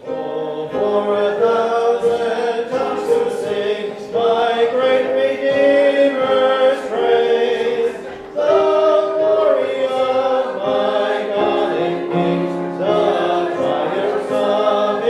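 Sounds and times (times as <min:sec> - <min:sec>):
choir singing held notes: 0:00.0 - 0:15.0.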